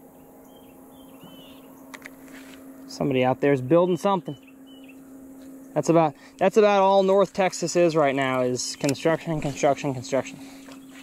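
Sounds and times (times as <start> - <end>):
distant construction machinery hum: 0.0 - 11.0.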